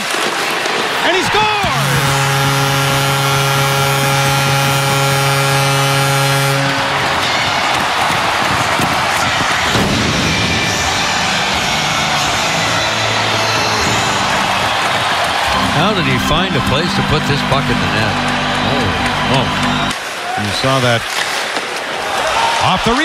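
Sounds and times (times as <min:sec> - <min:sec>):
crowd cheering: 0:00.0 - 0:23.0
music over arena speakers: 0:01.4 - 0:20.0
goal horn low chord: 0:01.5 - 0:08.4, 0:12.0 - 0:19.9.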